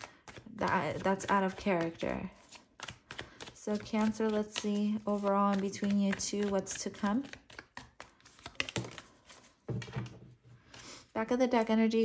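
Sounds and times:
cards shuffled and tapped: 0.0 - 10.8.

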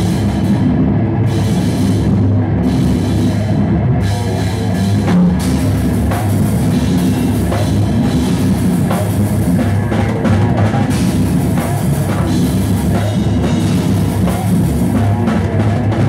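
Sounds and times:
drum kit pounding: 0.0 - 16.0
electric guitar: 0.0 - 16.0.

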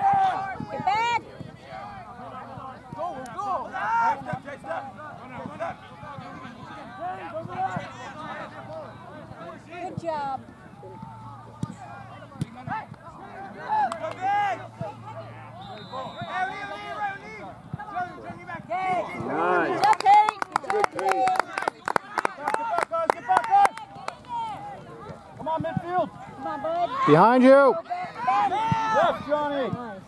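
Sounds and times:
sharp hand claps: 19.7 - 24.3.

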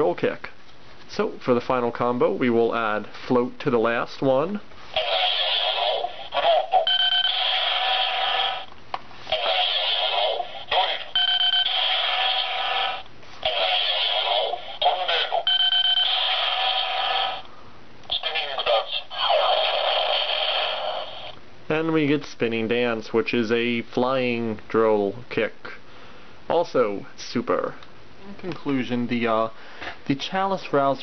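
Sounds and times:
noisy electronic effect: 5.0 - 8.7, 9.3 - 17.5
recorded voice calling out: 5.0 - 8.7, 9.3 - 15.6, 18.1 - 20.1.

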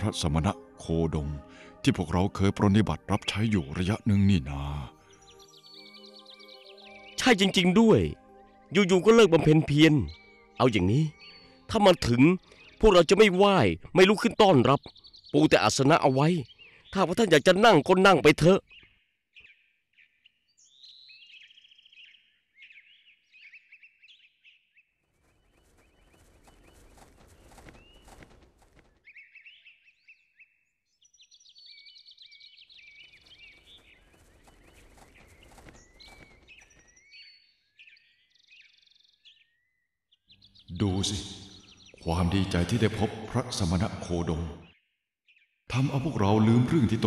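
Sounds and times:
birds chirping and calling: 0.0 - 44.8.

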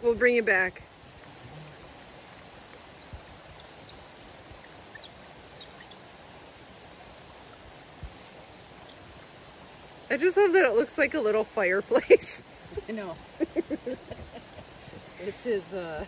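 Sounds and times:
faint steady hiss: 0.0 - 16.0
short high chirps and ticks: 1.1 - 6.1, 8.0 - 9.4.

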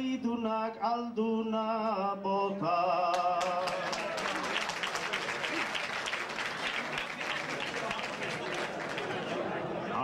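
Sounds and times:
audience clapping: 3.1 - 9.6.

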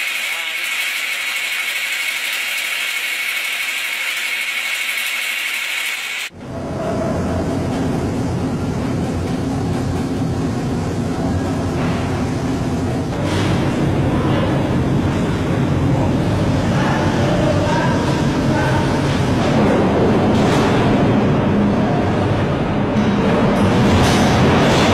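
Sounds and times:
grinding mill hissing grind: 0.0 - 6.3
mixing machines rumbling hum: 0.0 - 24.9.

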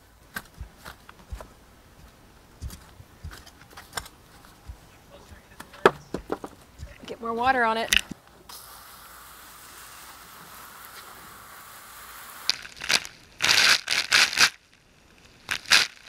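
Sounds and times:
hose water spraying on soil: 8.5 - 16.0
garden fork crunching soil: 12.5 - 14.6, 15.4 - 16.0.

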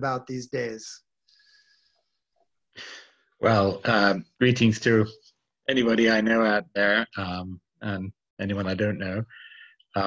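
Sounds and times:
man speaking: 0.0 - 1.0, 2.8 - 10.0.

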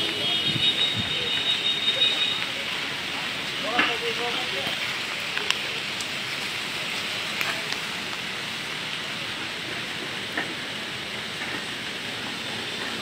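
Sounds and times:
light rain falling: 0.0 - 13.0.

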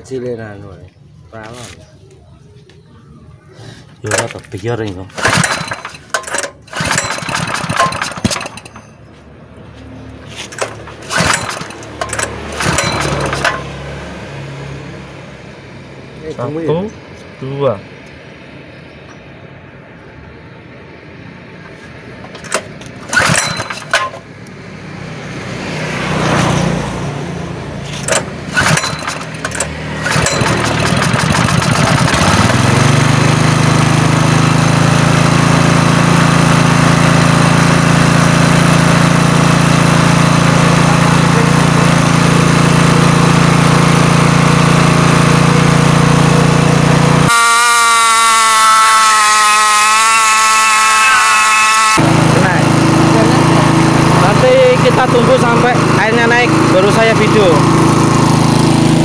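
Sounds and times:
engine running unevenly with knocks: 5.1 - 9.2, 9.8 - 14.0, 22.2 - 24.4, 27.8 - 47.3
wavering horn-like tone: 47.2 - 52.1.

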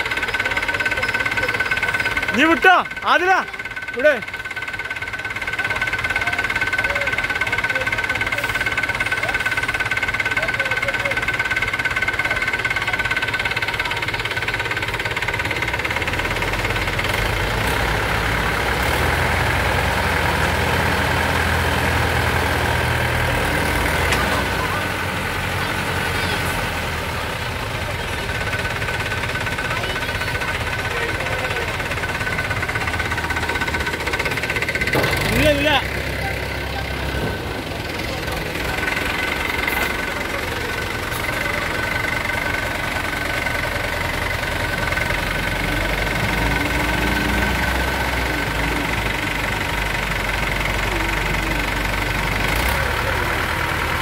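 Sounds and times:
tractor diesel engine rumbling: 0.0 - 54.0.

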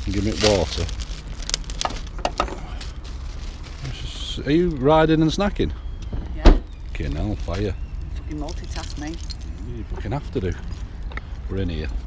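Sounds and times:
plastic packet crinkling: 0.0 - 3.9
low steady rumble: 0.0 - 12.0.

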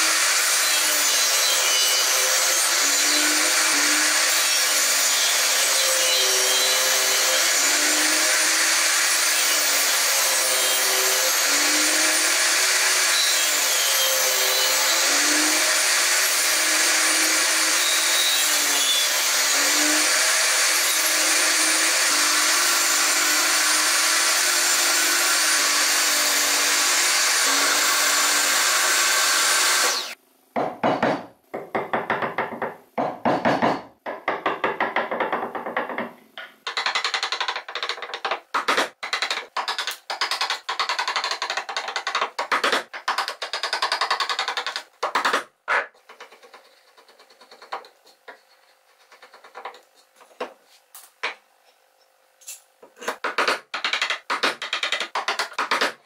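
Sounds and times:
table saw cutting wood: 0.0 - 30.2.

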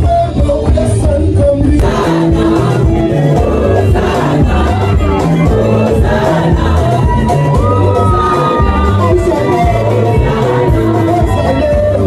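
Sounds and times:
crowd singing and shouting: 0.0 - 12.0
gospel music through a pa: 0.0 - 12.0.

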